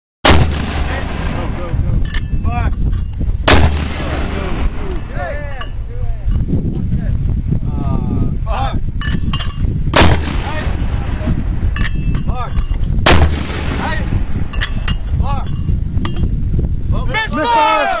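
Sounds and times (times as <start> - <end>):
mortar firing bangs: 0.2 - 2.7, 3.4 - 5.3, 9.9 - 12.4, 13.0 - 15.0
steady low rumble: 0.2 - 17.4.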